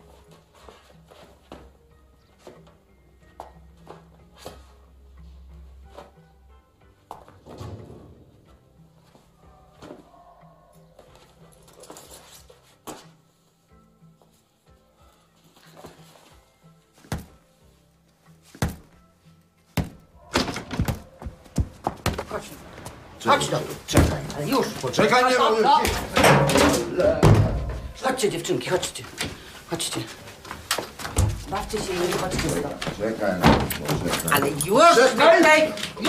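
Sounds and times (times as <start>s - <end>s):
faint background music: 0.0s - 36.0s.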